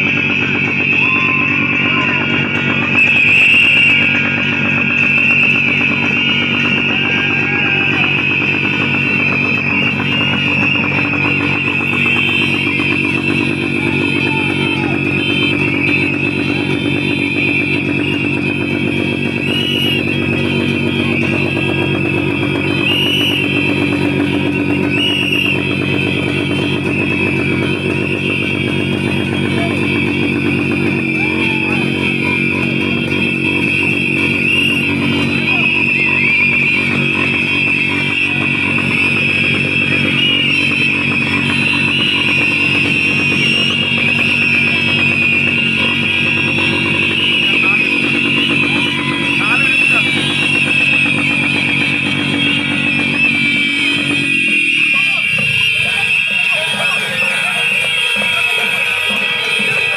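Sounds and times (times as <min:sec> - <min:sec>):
low buzzing drone: 0:00.0 - 0:56.0
crowd blowing whistles: 0:00.0 - 0:59.9.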